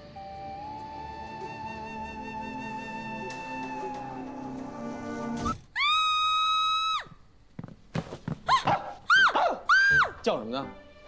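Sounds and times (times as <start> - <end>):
woman screaming: 5.8 - 7.1, 8.5 - 10.2.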